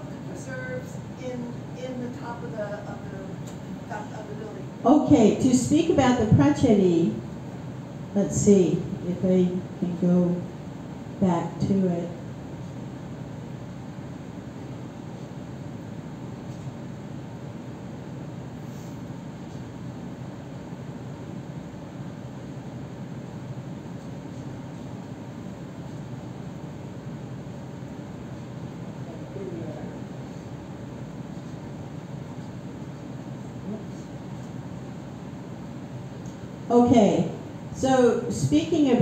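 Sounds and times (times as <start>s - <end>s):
low hum of room noise: 0.0s - 39.0s.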